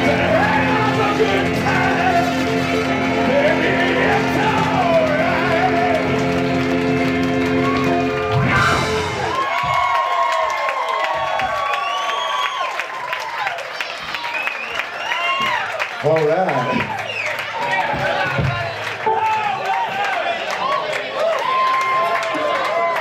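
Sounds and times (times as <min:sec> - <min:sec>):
rock band with horns playing: 0:00.0 - 0:09.8
crowd cheering and whooping: 0:00.0 - 0:23.0.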